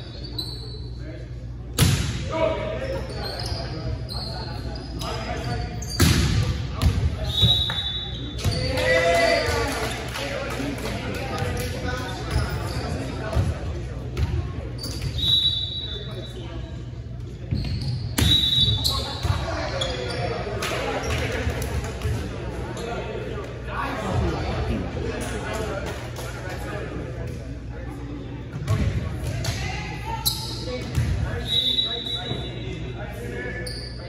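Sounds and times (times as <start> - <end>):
shoe squeaks: 0.0 - 1.2, 2.9 - 6.1, 12.0 - 13.3, 14.8 - 16.5, 17.4 - 21.2, 30.1 - 34.0.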